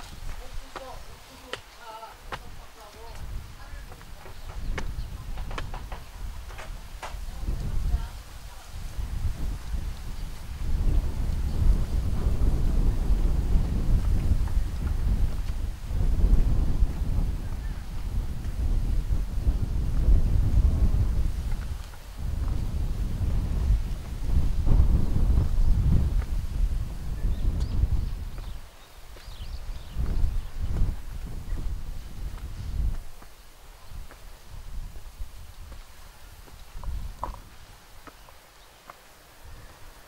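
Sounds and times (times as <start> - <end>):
wind buffeting microphone: 0.0 - 38.4, 39.3 - 40.0.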